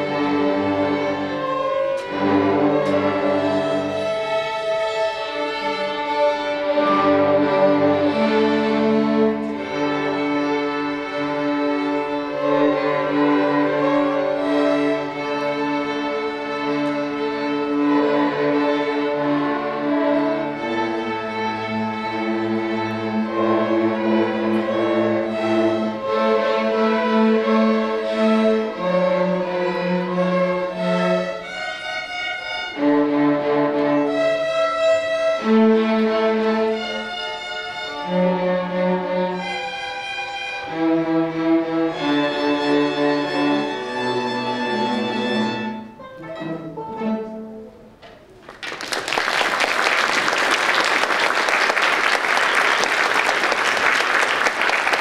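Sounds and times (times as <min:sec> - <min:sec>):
string orchestra playing chords: 0:00.0 - 0:48.4, 0:49.0 - 0:55.0.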